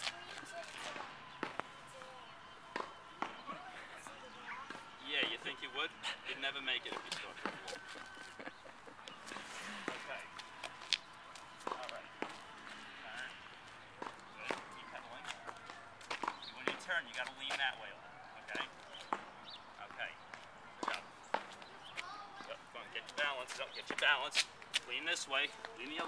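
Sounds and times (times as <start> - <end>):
faint voices: 0.0 - 26.0
footsteps on paved path: 0.0 - 26.0.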